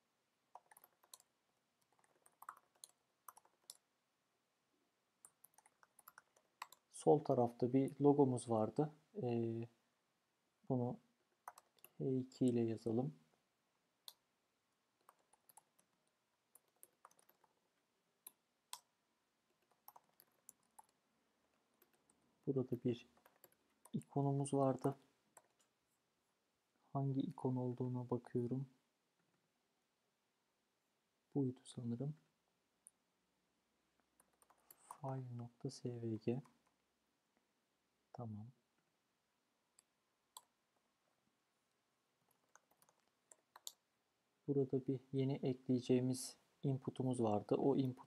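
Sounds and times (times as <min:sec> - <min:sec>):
computer keyboard typing: 0:00.5 - 0:03.8, 0:05.2 - 0:06.9, 0:11.4 - 0:12.0, 0:15.0 - 0:17.6, 0:19.5 - 0:22.2, 0:23.1 - 0:24.1, 0:25.3 - 0:25.6, 0:34.2 - 0:35.1, 0:42.2 - 0:43.8.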